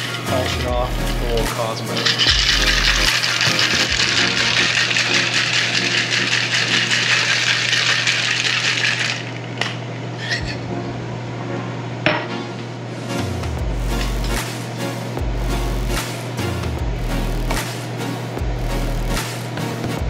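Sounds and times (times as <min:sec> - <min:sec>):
cocktail shaker rattling: 0:01.9 - 0:09.4.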